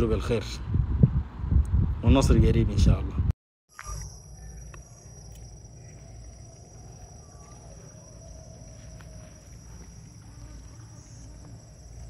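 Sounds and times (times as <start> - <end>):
high-pitched insect drone: 3.7 - 12.0.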